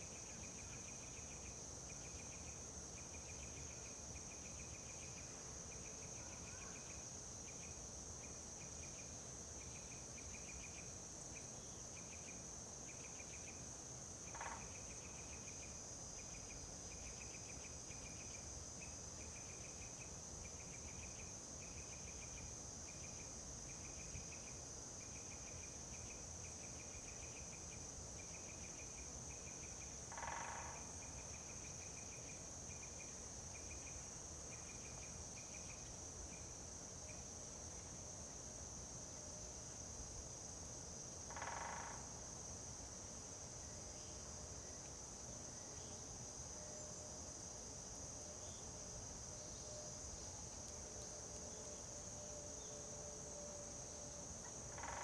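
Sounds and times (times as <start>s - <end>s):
crickets chirping: 0.0s - 55.0s
high-pitched insect drone: 41.3s - 42.2s, 51.0s - 55.0s.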